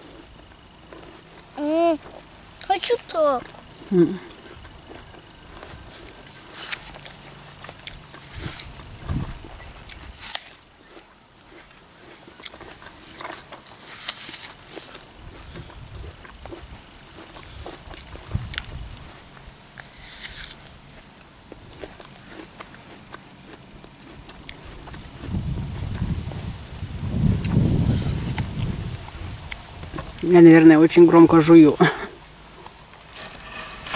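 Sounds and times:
apple crunching while chewed: 0:00.0 - 0:26.4
grasshoppers chirping: 0:00.0 - 0:33.9.

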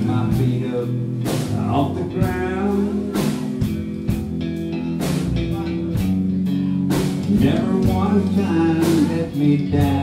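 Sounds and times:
person singing: 0:00.0 - 0:03.8, 0:07.1 - 0:10.0
country band playing: 0:00.0 - 0:10.0.

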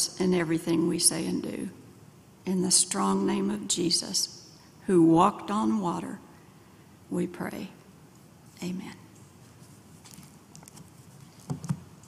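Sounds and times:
papers rustling: 0:09.4 - 0:12.0
soft bumps on lectern: 0:11.3 - 0:12.0.

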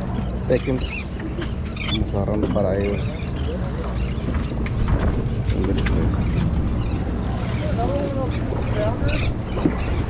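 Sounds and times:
boat engine hum: 0:00.0 - 0:10.0
wind on microphone: 0:03.8 - 0:10.0.

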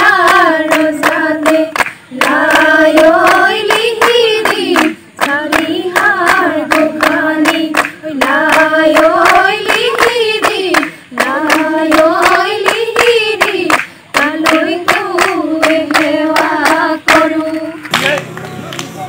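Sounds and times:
women singing together: 0:00.0 - 0:17.9
rhythmic hand claps: 0:00.0 - 0:19.0.

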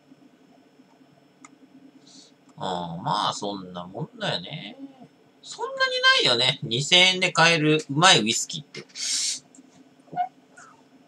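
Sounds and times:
person speaking: 0:02.6 - 0:09.4.

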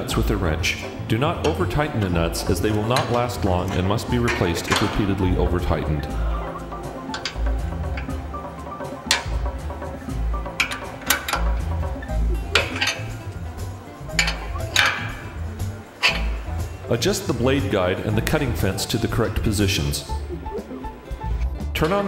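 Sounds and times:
music with pulsing bass: 0:04.1 - 0:18.9, 0:19.5 - 0:21.8
wrench clinking on metal: 0:07.0 - 0:08.2, 0:10.3 - 0:11.8, 0:12.4 - 0:13.3, 0:14.0 - 0:16.7.

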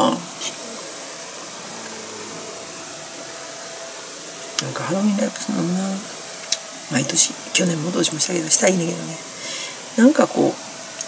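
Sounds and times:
faint low hum: 0:00.0 - 0:11.0
room noise hiss: 0:00.0 - 0:11.0.

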